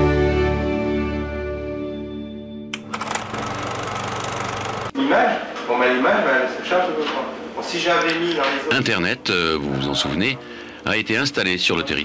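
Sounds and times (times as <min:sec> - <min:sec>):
harsh mechanical buzz with hiss: 0:02.8 - 0:04.9.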